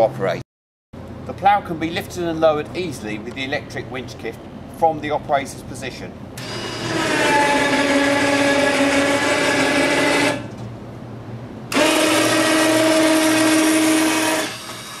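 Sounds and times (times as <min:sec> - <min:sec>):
winch motor whine: 0:06.4 - 0:10.6, 0:11.7 - 0:15.0.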